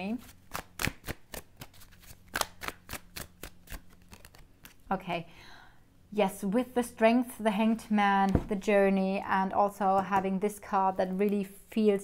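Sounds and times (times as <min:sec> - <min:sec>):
cards being shuffled: 0:00.2 - 0:04.9.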